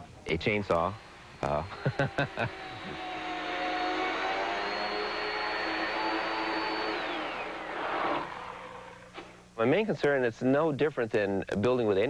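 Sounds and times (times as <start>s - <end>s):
chainsaw cutting through block: 1.4s - 8.5s.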